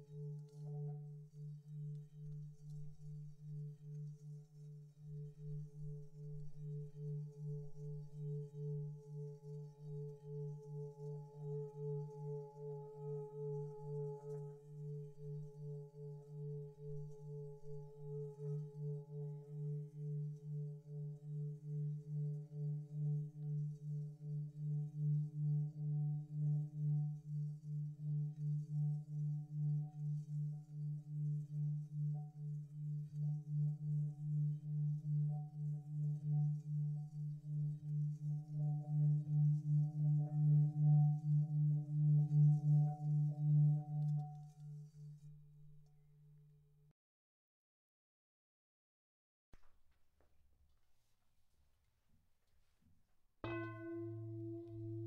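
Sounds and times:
singing bowl tone: 0.0 - 45.8, 53.4 - 55.0.

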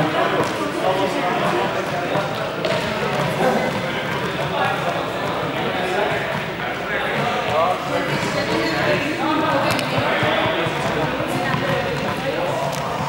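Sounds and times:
voices echoing in a hall: 0.0 - 13.0.

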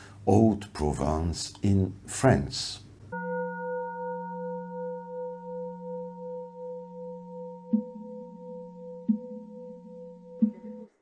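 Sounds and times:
sustained bell-like ringing tone: 3.1 - 10.9.

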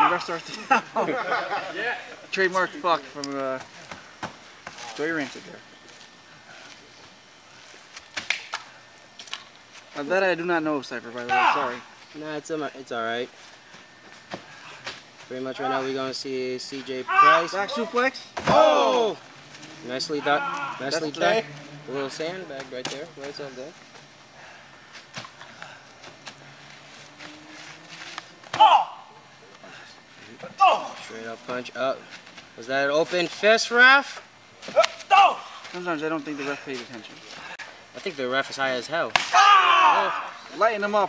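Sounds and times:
wrestlers scuffling: 0.0 - 39.4
sharp knocks or slaps: 39.1 - 39.4.

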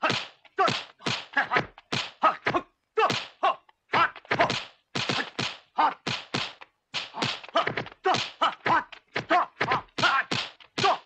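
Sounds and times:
punch and block whacks: 0.0 - 11.0.

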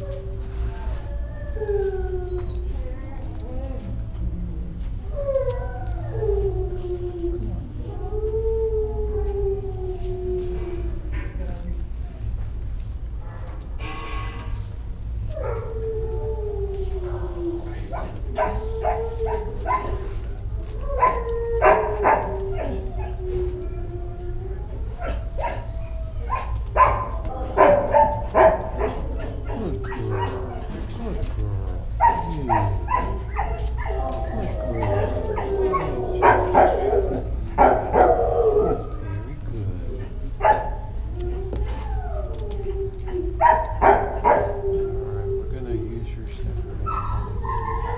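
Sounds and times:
dog howling: 0.0 - 11.6, 15.3 - 47.9
steady low hum: 0.0 - 47.9
dog barking: 26.3 - 29.1, 32.0 - 33.9, 40.4 - 40.8.

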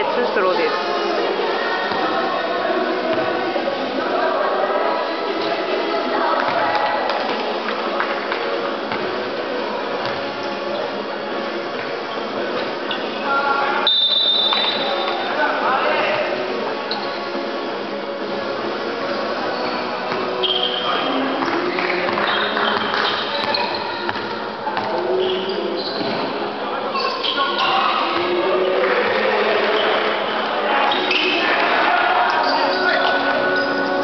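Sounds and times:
busy gym noise: 0.0 - 34.0
shoes squeaking on hardwood court: 12.1 - 15.3, 16.9 - 17.3, 19.2 - 28.3, 29.6 - 31.5, 32.3 - 34.0
referee's whistle: 13.8 - 14.9, 20.4 - 21.1
players calling out: 19.6 - 34.0.

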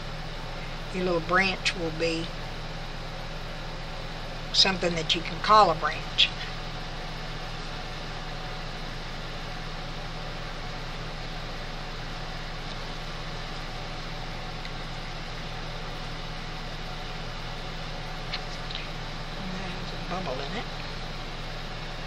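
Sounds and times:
machine humming and hissing: 0.0 - 22.0.

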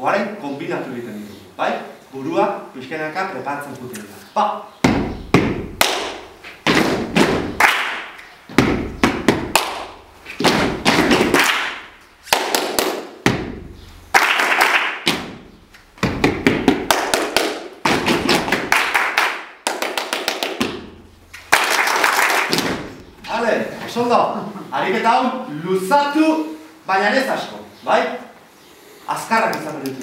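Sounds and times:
feet stamping: 4.8 - 13.8, 15.0 - 18.8, 20.1 - 21.6
group clapping hands: 5.7 - 13.4, 14.1 - 23.0, 29.4 - 30.0.

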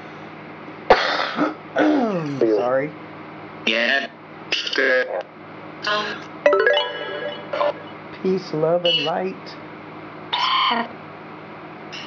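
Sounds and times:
electronic blips: 6.5 - 8.0.

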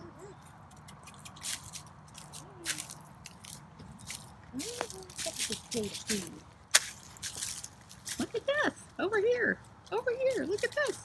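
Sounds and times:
footsteps crunching dry leaves: 0.5 - 11.0.

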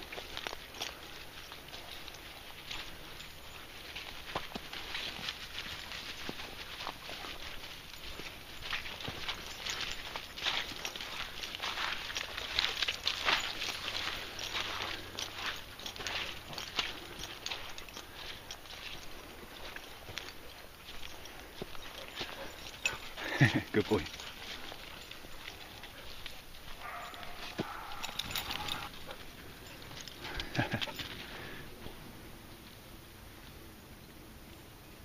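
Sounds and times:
dog paws rustling through leaves: 0.0 - 32.7
footsteps crunching through dry leaves: 0.0 - 32.8.

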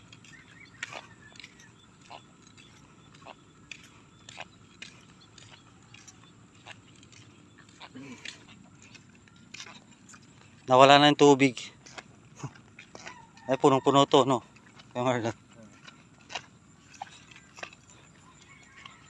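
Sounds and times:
barefoot footsteps on wet mud: 0.0 - 19.0
low outdoor background: 0.0 - 19.0.

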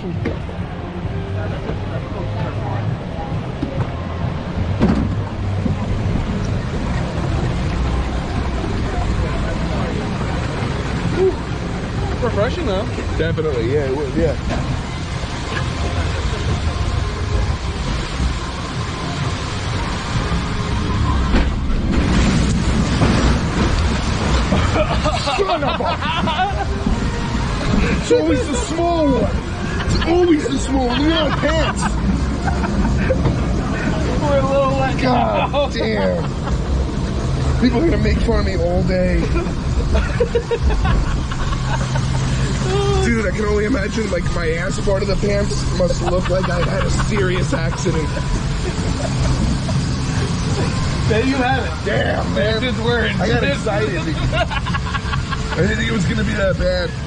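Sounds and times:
low mechanical hum: 0.0 - 57.0
rushing water noise: 0.0 - 57.0
water coaster boat rumbling: 0.0 - 57.0
person laughing: 24.5 - 26.8, 39.3 - 43.1, 45.9 - 50.4.

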